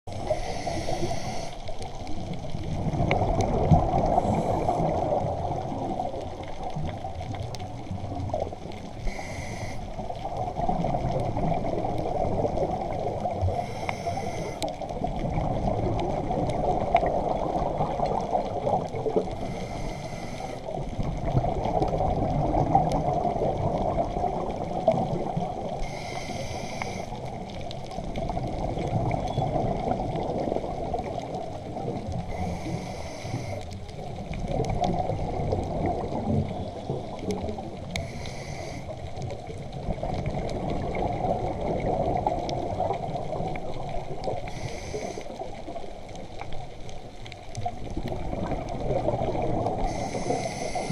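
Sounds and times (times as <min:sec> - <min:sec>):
regulator inhalation hiss: 0:00.1 - 0:01.6, 0:09.0 - 0:09.9, 0:13.5 - 0:14.7, 0:19.4 - 0:20.7, 0:25.8 - 0:27.2, 0:32.3 - 0:33.7, 0:38.0 - 0:38.9, 0:44.5 - 0:45.4, 0:49.9 - 0:50.9
rumble of exhaled bubbles: 0:00.1 - 0:50.9.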